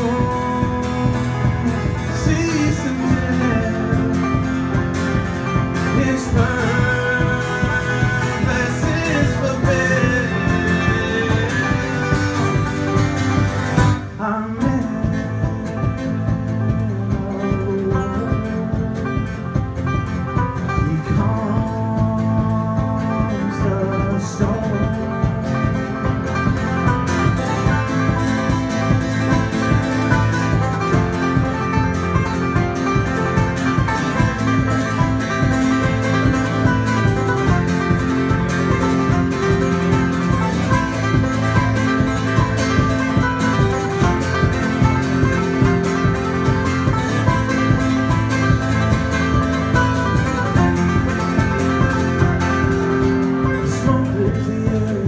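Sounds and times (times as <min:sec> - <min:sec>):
acoustic guitar strumming: 0:00.0 - 0:55.0
banjo picking: 0:00.0 - 0:55.0.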